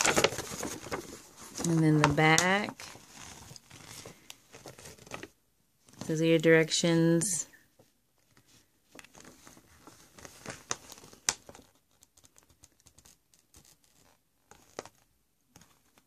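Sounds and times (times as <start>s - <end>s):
paper rustling and crinkling: 0.0s - 6.1s, 8.2s - 16.0s.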